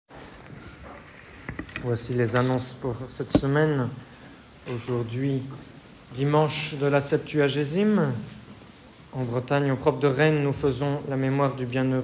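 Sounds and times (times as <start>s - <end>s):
recording hiss: 0.1s - 12.0s
man speaking: 1.8s - 4.0s, 9.2s - 12.0s.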